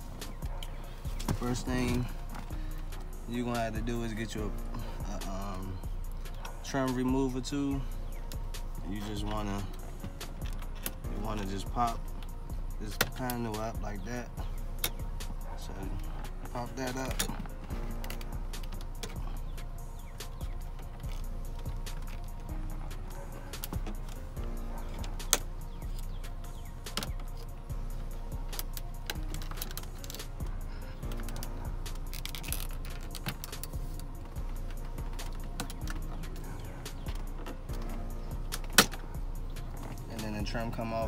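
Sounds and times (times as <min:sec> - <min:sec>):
background music: 0:00.0 - 0:41.0
trim clips snapping: 0:28.3 - 0:40.0.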